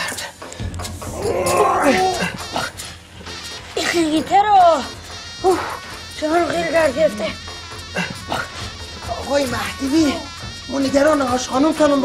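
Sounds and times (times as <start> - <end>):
person groaning: 1.1 - 2.8.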